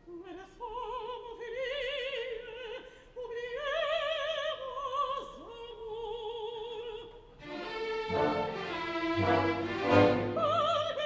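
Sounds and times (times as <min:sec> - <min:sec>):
strings sustained chords: 0:07.4 - 0:10.6.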